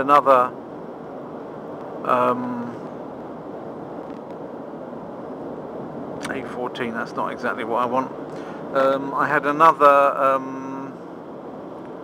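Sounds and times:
car interior driving drone: 0.0 - 12.0.

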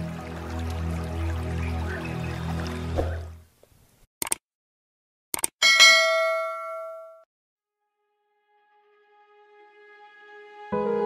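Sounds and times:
soft music: 0.0 - 3.0, 7.8 - 11.0
notification bell ding: 5.6 - 7.2.

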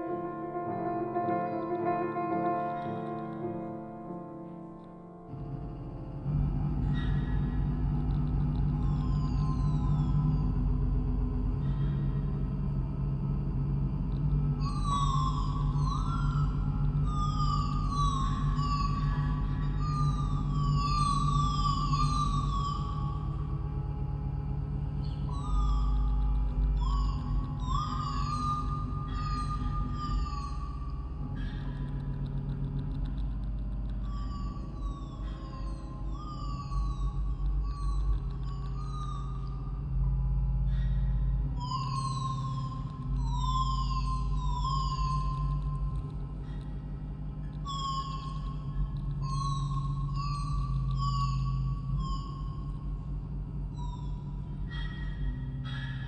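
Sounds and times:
deep sustained drone: 5.3 - 56.0.

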